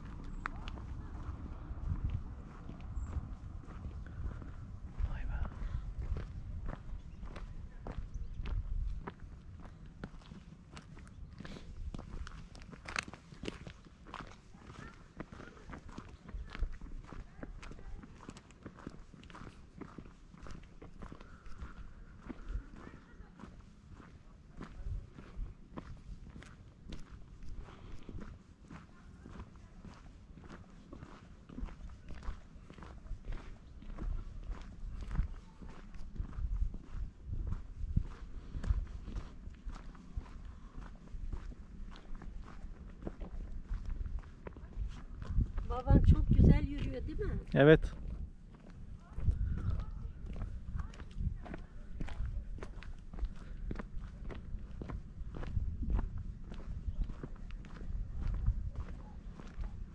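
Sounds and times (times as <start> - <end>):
footsteps on asphalt: 0.0 - 59.9.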